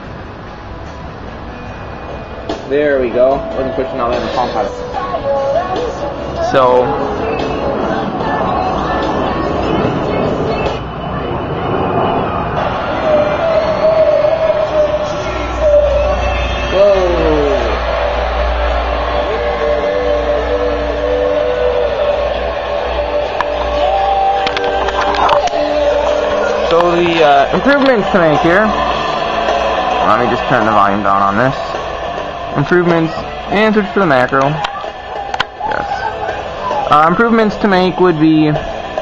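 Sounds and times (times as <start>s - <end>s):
music from small portable speakers: 2.0s - 10.8s, 12.9s - 39.0s.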